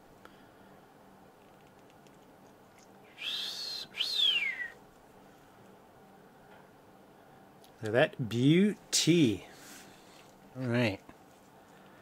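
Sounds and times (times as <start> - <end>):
person wolf whistling: 3.1 - 4.8.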